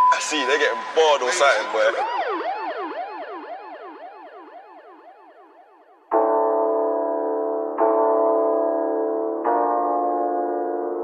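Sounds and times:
electronic siren yelping: 0.0s - 6.1s.

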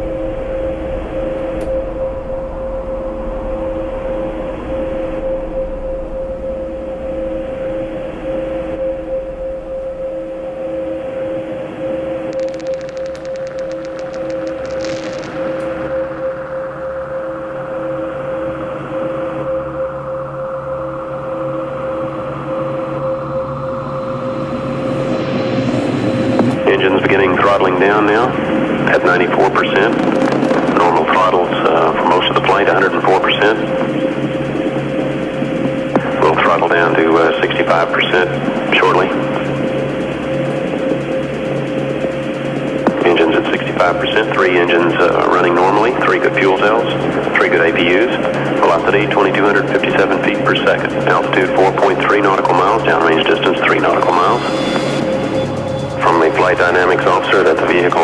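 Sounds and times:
synth drone: 0.0s - 58.0s
fast high clicks: 12.3s - 16.7s
processed voice-like sample: 42.9s - 54.5s, 55.9s - 58.0s.

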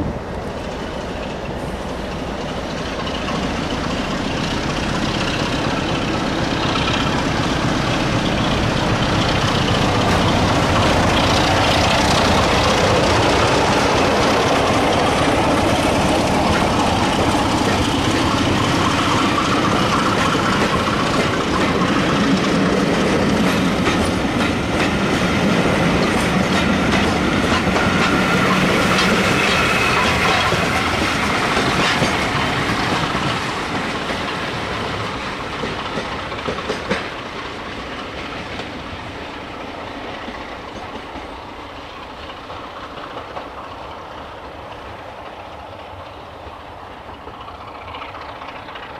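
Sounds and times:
train wheels rumbling on rail: 0.0s - 48.9s.

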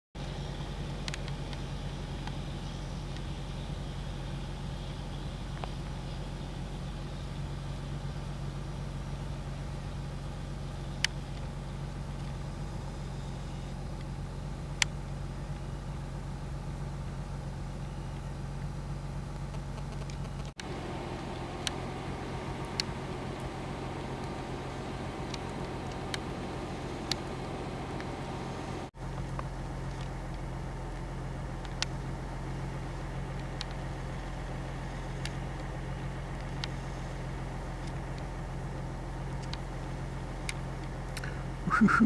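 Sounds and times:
vehicle engine idling: 0.2s - 42.0s.

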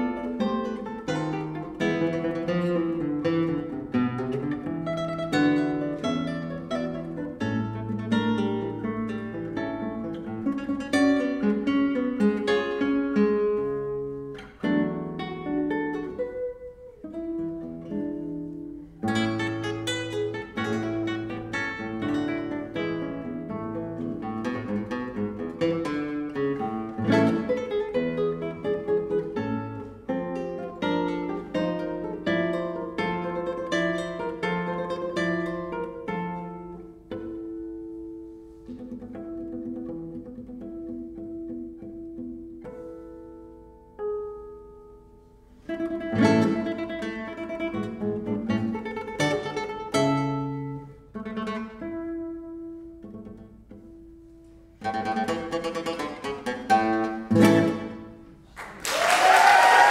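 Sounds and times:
classical guitar fingerstyle: 0.0s - 58.8s.

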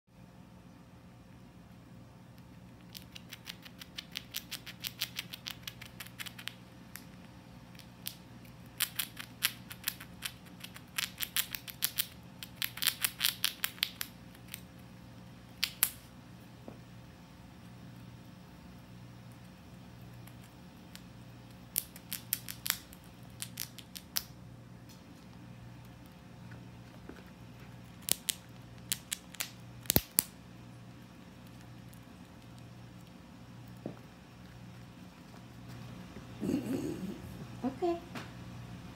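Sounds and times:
squirrel crunching a nut: 2.2s - 16.2s, 17.5s - 37.0s.

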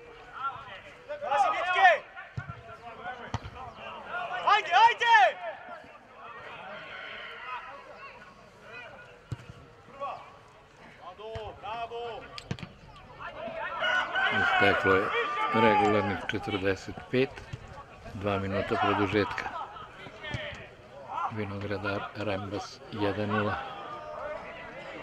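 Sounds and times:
people shouting outdoors: 0.0s - 9.2s, 13.1s - 16.8s, 17.9s - 25.0s.

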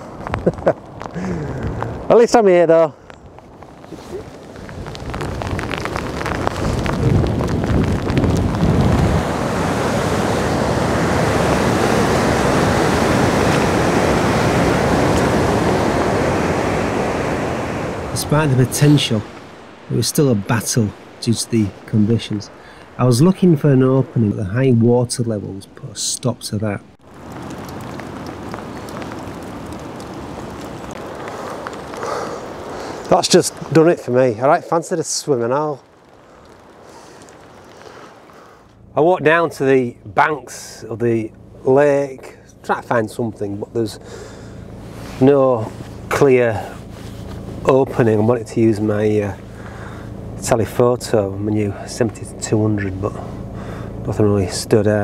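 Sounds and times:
strong wind buffeting microphone: 0.0s - 2.1s, 3.0s - 38.3s
driving rain: 0.0s - 55.0s
water washing against shore: 3.3s - 40.4s.

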